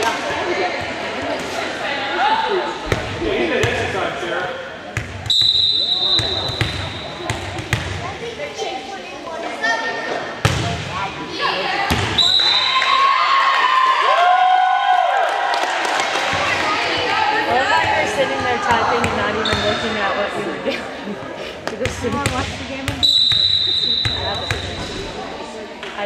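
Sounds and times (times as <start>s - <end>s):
spectators' voices: 0.0s - 26.0s
players calling: 2.4s - 7.6s
referee's whistle: 5.3s - 7.2s, 12.1s - 12.9s, 23.0s - 24.8s.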